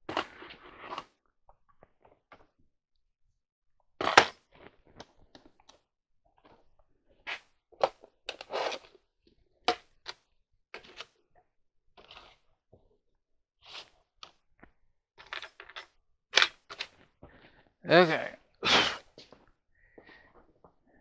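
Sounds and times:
small objects knocking and clicking: 14.3s - 17.1s.

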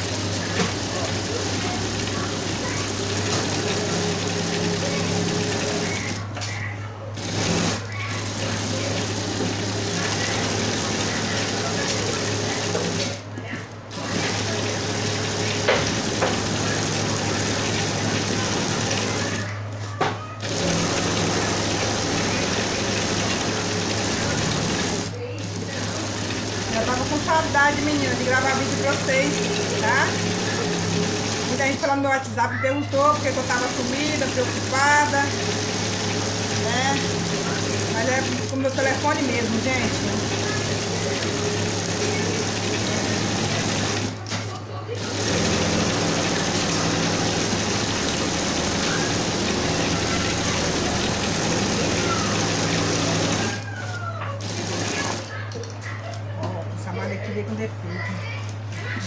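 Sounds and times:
electric sewing machine running: 0.0s - 6.4s, 7.2s - 19.6s, 20.4s - 53.7s, 54.4s - 55.4s.

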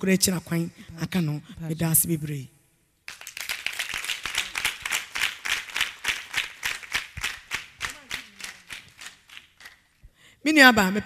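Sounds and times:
hands clapping: 3.1s - 10.1s.

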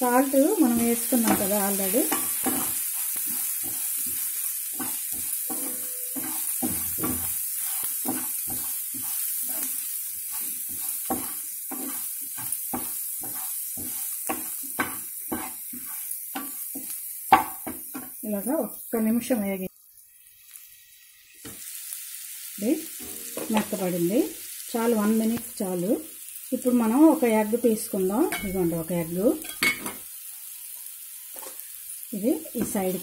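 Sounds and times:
food sizzling in oil: 0.0s - 33.0s
spatula scraping and knocking pan: 0.7s - 18.2s, 22.9s - 23.8s.

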